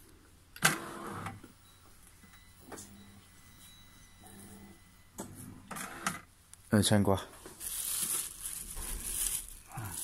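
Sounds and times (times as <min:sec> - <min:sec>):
plastic packaging crinkling: 0:07.5 - 0:10.0.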